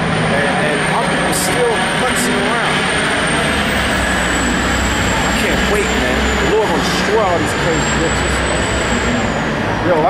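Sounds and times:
distant traffic: 0.0s - 10.0s
street noise: 0.0s - 10.0s.

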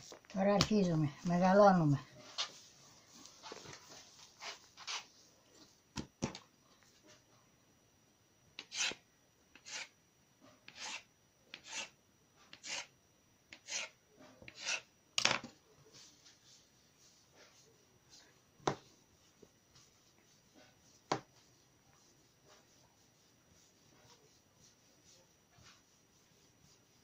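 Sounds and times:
dough rubbing on wooden board: 12.6s - 12.9s, 13.6s - 14.9s, 15.9s - 27.0s.

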